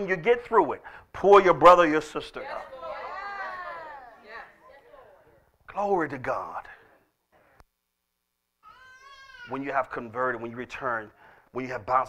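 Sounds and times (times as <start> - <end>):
faint high-pitched cry: 8.6 - 9.7.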